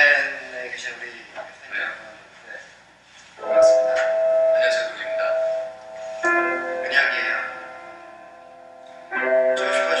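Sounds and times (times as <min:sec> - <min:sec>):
person speaking: 0:03.4 - 0:05.6
piano chord ringing: 0:03.4 - 0:10.0.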